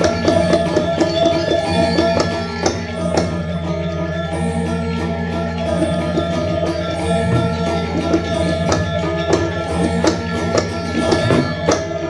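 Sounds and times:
drum strokes: 0:00.0 - 0:03.6, 0:05.8 - 0:12.0
metallophone melodies: 0:00.0 - 0:12.0
low gong tones: 0:06.9 - 0:11.7.

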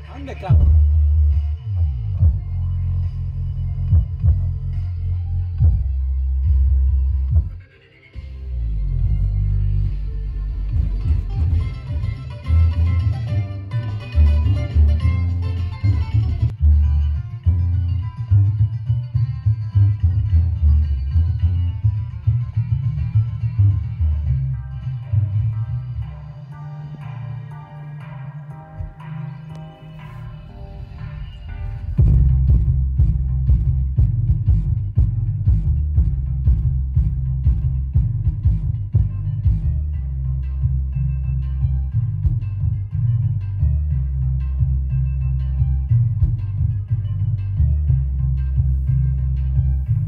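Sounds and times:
bass-heavy music through speakers: 0:00.0 - 0:50.0.

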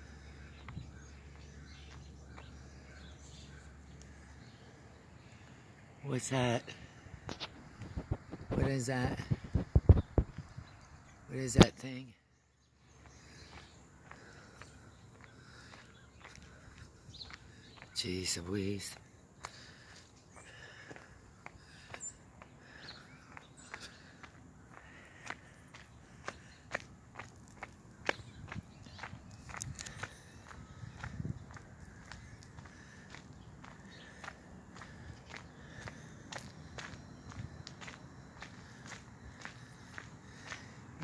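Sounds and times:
faint outdoor background noise: 0:00.0 - 0:41.0
footsteps clicking: 0:13.0 - 0:18.0, 0:18.9 - 0:41.0.

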